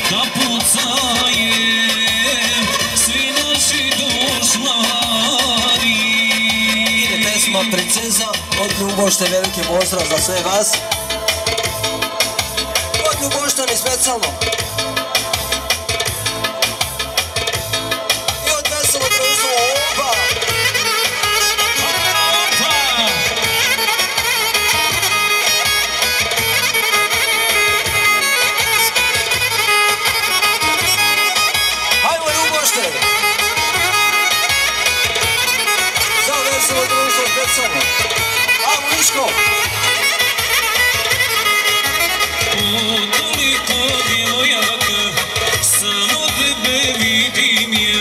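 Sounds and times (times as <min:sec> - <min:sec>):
steady drum beat: 0:00.0 - 0:48.0
reedy wind instrument melody: 0:17.4 - 0:46.3.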